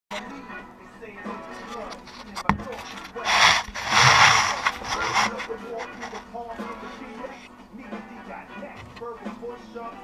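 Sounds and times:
scraping and rubbing noise: 0:01.4 - 0:07.5
camera knocking on workbench: 0:02.4 - 0:02.8.

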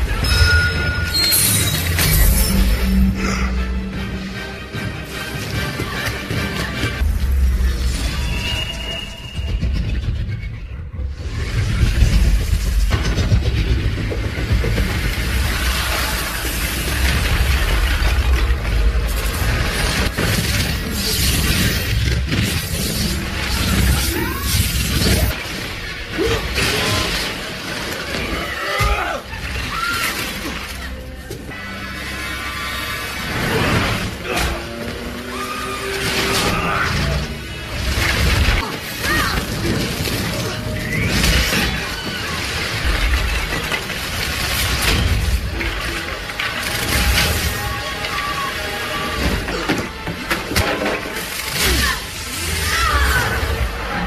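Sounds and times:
film music score: 0:00.0 - 0:54.0
crashes and shattering debris: 0:04.6 - 0:54.0.

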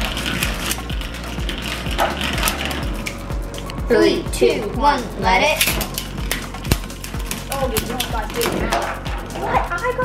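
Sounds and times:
spinning top rattling: 0:00.0 - 0:03.7, 0:05.3 - 0:09.8
background music with steady beat: 0:00.0 - 0:10.0.

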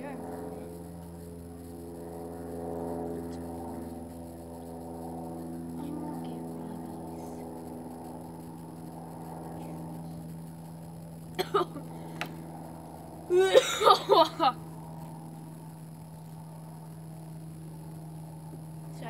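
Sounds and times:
motor humming steadily: 0:00.0 - 0:19.0.

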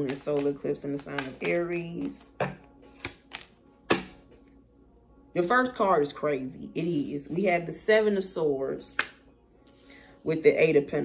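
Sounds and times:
cards slapping on a table: 0:00.0 - 0:04.1, 0:09.0 - 0:09.2.

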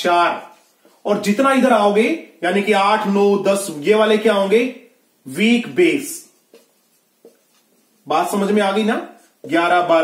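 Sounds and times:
marker writing on whiteboard: 0:00.0 - 0:01.7, 0:05.7 - 0:10.0.

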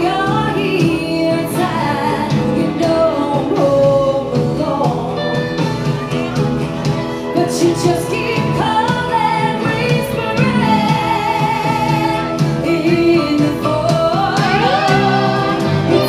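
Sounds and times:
acoustic guitars: 0:00.0 - 0:16.0
drums: 0:00.0 - 0:16.0
electric guitar: 0:00.0 - 0:16.0
person singing: 0:07.4 - 0:16.0
fiddle: 0:14.4 - 0:16.0.

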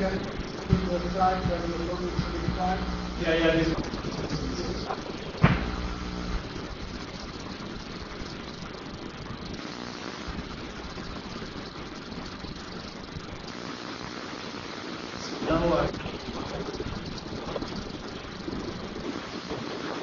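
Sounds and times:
low hum: 0:00.0 - 0:20.0
room tone hiss: 0:00.0 - 0:20.0
sharp knock: 0:05.4 - 0:05.8.

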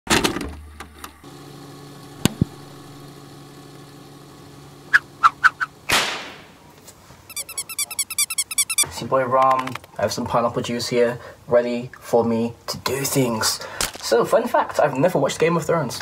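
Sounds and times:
steady electrical buzz: 0:01.1 - 0:06.6
loud burst: 0:05.8 - 0:06.6.

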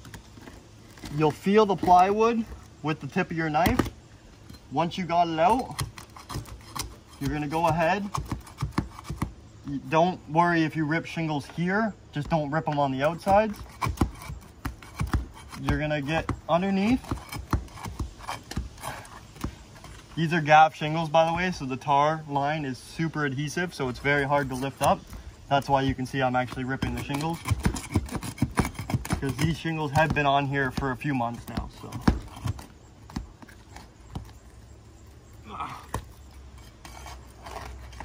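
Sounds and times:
pry bar knocking and scraping shingles: 0:00.0 - 0:09.4, 0:11.4 - 0:20.2, 0:23.8 - 0:34.4
roof shingle tearing: 0:23.9 - 0:34.4.

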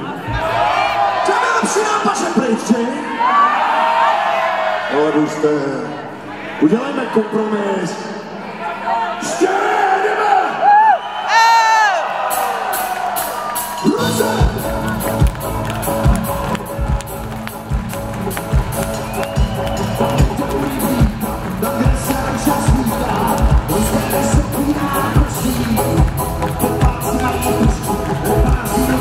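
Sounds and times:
crowd cheering: 0:00.0 - 0:07.6, 0:08.4 - 0:29.0
live band playing: 0:12.2 - 0:29.0.

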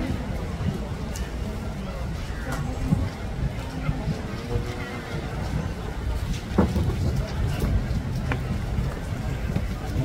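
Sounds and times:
faint voices: 0:00.0 - 0:10.0
wind buffeting microphone: 0:00.0 - 0:10.0.

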